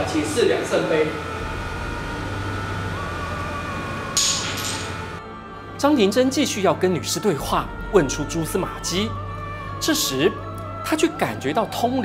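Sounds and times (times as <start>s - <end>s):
steady low hum: 0.0s - 12.0s
faint wavering high tone: 1.0s - 5.6s.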